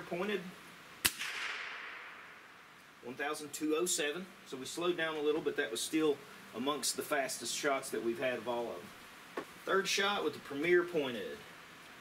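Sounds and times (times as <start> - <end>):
air rifle shot with ringing tail: 1.0 - 2.4.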